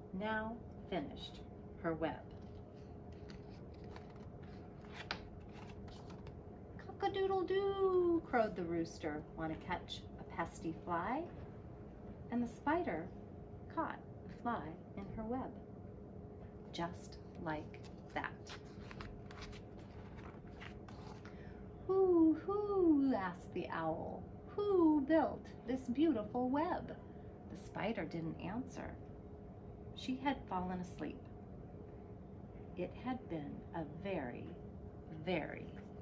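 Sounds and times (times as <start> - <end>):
faint steady hum: 0.0 - 36.0
paper rustling: 2.3 - 6.4, 17.6 - 21.4.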